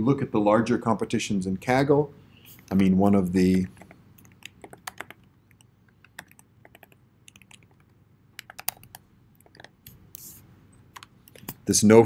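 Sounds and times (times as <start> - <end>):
computer keyboard typing: 3.7 - 9.9.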